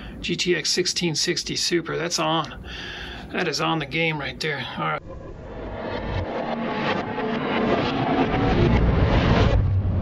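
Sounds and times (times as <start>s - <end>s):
deep rumbling whoosh: 5.0s - 10.0s.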